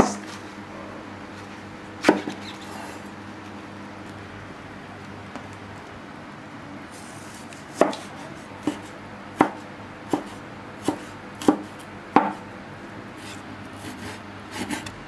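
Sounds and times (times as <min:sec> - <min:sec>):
cleaver chopping meat on wood: 0:07.8 - 0:12.4.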